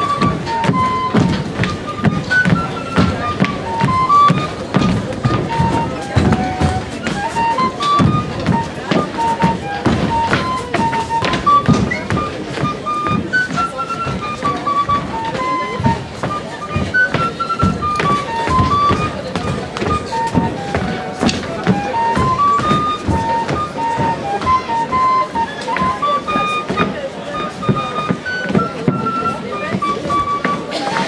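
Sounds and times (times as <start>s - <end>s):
folk dance tune on high pipe: 0.0s - 31.0s
low drum beats: 0.0s - 31.0s.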